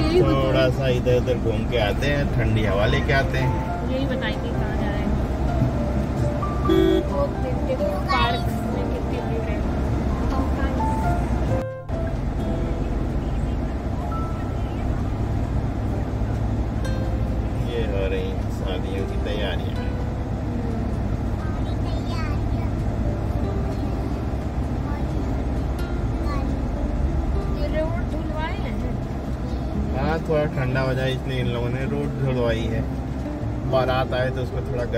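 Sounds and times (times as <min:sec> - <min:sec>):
road and engine rumble in car: 0:00.0 - 0:34.9.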